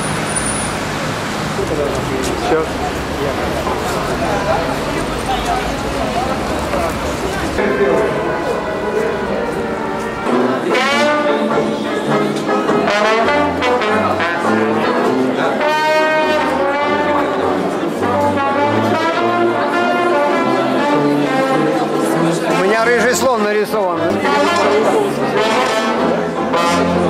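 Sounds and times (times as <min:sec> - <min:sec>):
brass band music: 0:01.6 - 0:27.0.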